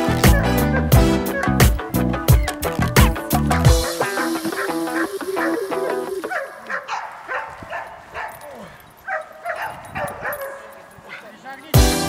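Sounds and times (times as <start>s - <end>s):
background music: 0.0s - 6.6s, 11.8s - 12.0s
dog barking: 0.2s - 1.7s, 3.8s - 11.4s.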